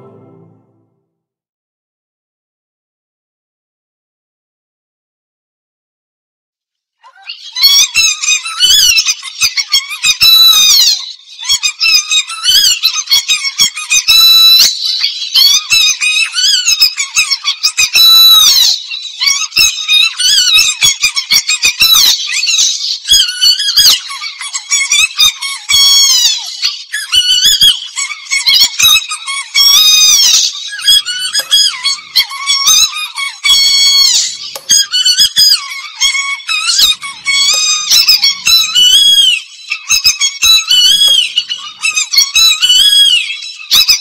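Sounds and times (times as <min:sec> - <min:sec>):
high squeaky film song melody: 0:00.0 - 0:00.8, 0:29.4 - 0:43.5.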